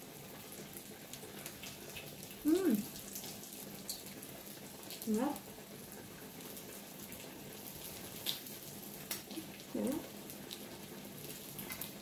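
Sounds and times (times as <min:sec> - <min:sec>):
meat sizzling on a grill: 0:00.0 - 0:12.0.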